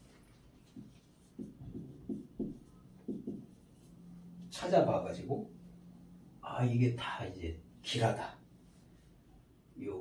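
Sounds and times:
marker writing on a whiteboard: 0.0 - 4.8.

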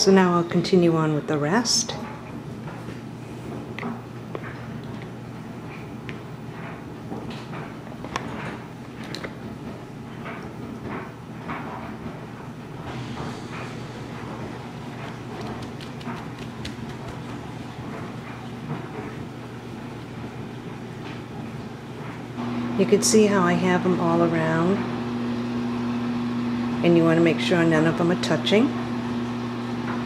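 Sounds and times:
steady low hum: 0.0 - 30.0
paper towel rustling: 14.9 - 18.5
small taps and clicks: 15.4 - 17.3.

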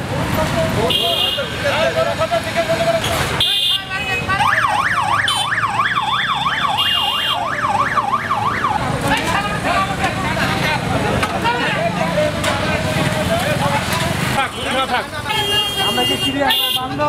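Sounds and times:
motorcycle traffic: 0.0 - 17.0
voices: 0.0 - 17.0
siren wailing up and down: 4.4 - 9.0.

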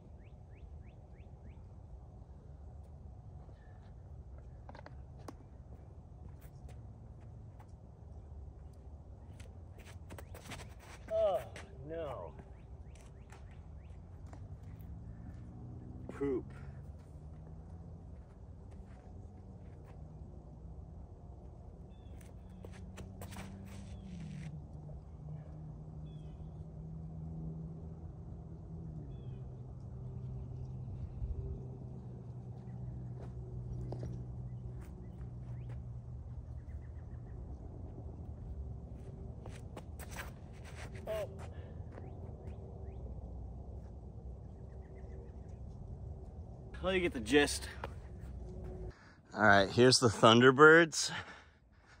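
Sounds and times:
steady low hum: 0.0 - 50.5.

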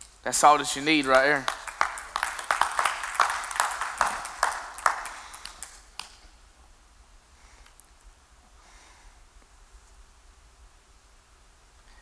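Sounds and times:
scattered hand claps: 1.0 - 6.2.

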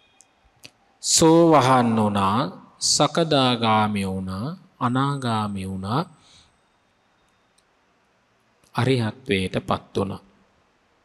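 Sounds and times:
man speaking: 1.0 - 6.1, 8.8 - 10.2.

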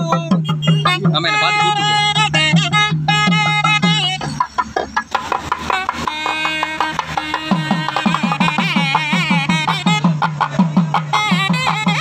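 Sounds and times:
barrel drum beat: 0.0 - 12.0
reed instrument melody: 0.3 - 4.6, 5.2 - 12.0.

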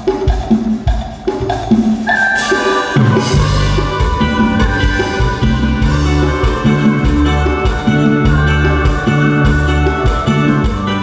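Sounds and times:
fast steady drum beat: 0.0 - 11.0
sustained melody line: 2.1 - 11.0
bass notes: 3.0 - 11.0.

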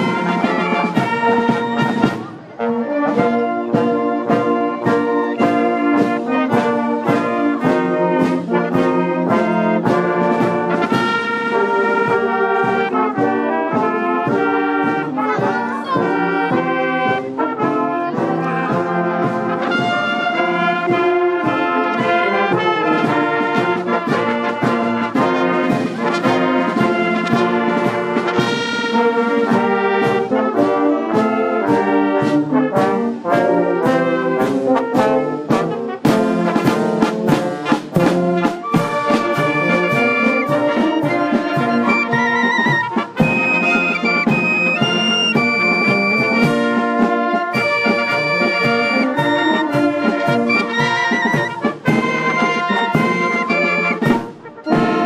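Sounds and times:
drum beat: 0.0 - 2.4, 3.2 - 55.0
brass band playing: 0.0 - 55.0
flutes and clarinets trilling: 0.0 - 55.0.

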